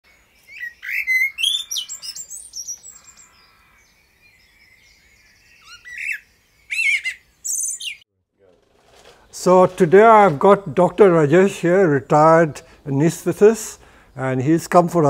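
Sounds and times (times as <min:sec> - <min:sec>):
birds chirping and calling: 0:00.1 - 0:08.0, 0:09.4 - 0:15.0.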